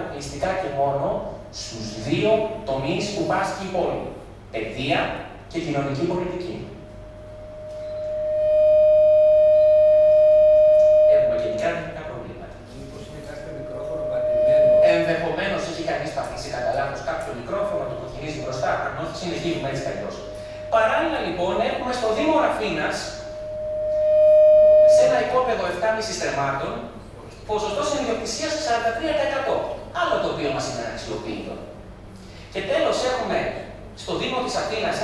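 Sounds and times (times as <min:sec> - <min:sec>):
microphone feedback tone: 0:06.6 - 0:12.0, 0:13.0 - 0:16.4, 0:18.3 - 0:26.2.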